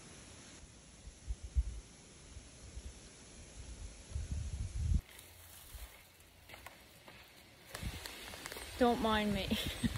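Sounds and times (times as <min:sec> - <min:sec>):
outdoor background hiss: 0:00.0 - 0:09.9.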